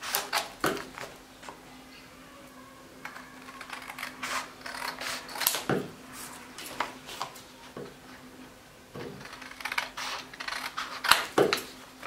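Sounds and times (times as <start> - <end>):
scissors cutting paper: 0.0 - 1.1, 3.0 - 7.4, 9.0 - 11.8.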